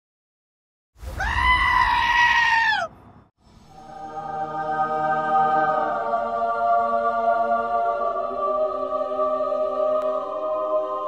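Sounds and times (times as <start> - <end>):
high-pitched scream-like cry: 1.0 - 2.9
soft music: 3.7 - 11.0.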